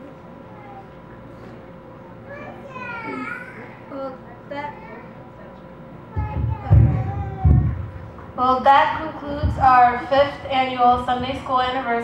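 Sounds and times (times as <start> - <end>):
faint steady hum: 0.0 - 12.0
child calling out: 2.3 - 3.7.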